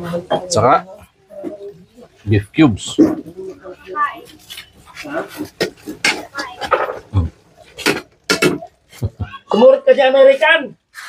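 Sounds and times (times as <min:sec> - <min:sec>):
people talking: 0:00.0 - 0:07.4, 0:08.3 - 0:10.7.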